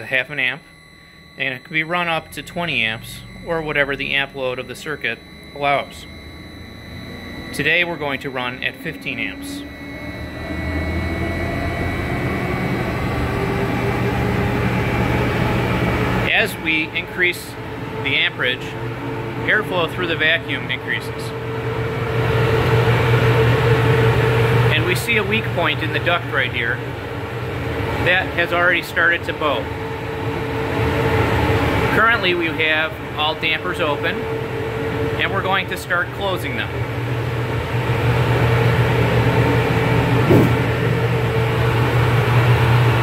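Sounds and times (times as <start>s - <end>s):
vacuum collector air rushing: 0.0s - 26.1s, 36.2s - 43.0s
constant low hum: 0.0s - 43.0s
faint steady whine: 0.0s - 43.0s.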